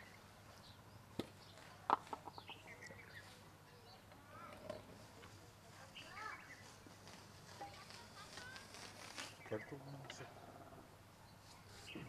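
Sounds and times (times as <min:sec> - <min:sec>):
faint birds chirping: 0:00.0 - 0:12.0.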